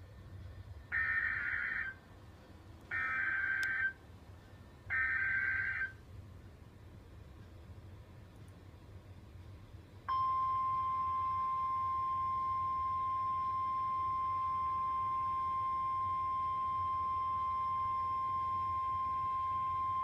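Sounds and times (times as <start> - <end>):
loud steady alarm beep: 10.1 - 20.0.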